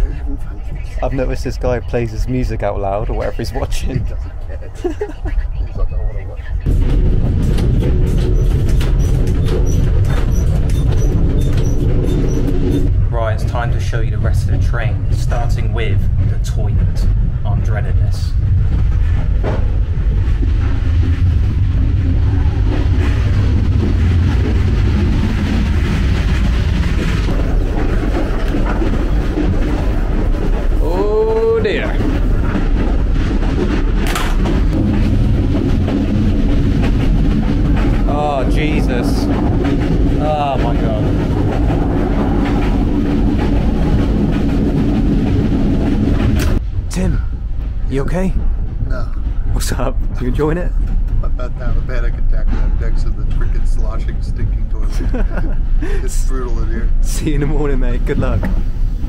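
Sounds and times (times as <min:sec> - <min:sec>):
train rumbling: 0:00.0 - 0:59.0.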